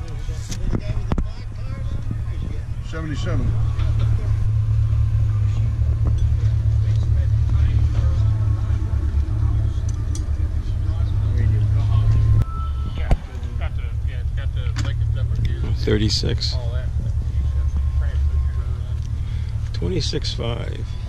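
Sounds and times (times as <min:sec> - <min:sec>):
faint voices: 0:00.0 - 0:21.0
loud low rumble: 0:00.0 - 0:21.0.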